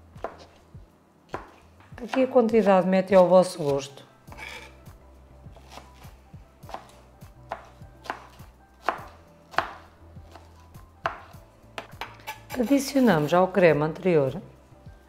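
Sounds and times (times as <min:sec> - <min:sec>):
knife chopping on cutting board: 0:00.2 - 0:00.6, 0:01.3 - 0:04.8, 0:05.5 - 0:13.3.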